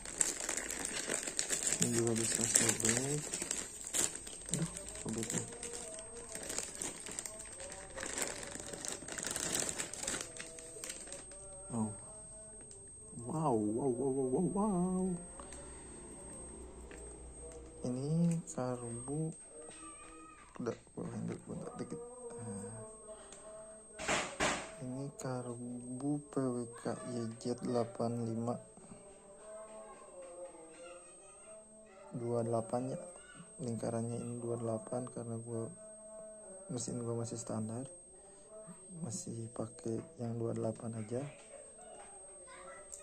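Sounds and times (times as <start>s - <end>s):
plastic bag crinkling: 0.0s - 12.0s
faint voice in background: 17.4s - 35.8s.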